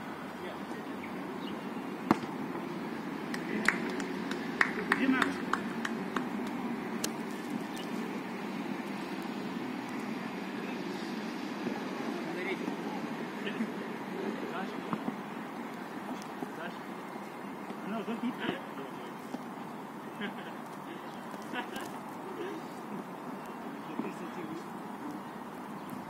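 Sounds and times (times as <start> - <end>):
outdoor background noise: 0.0 - 26.0
football kicks: 2.0 - 2.4.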